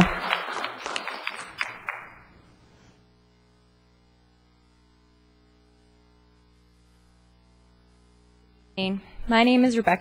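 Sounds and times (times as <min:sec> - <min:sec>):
audience applause: 0:00.0 - 0:02.3.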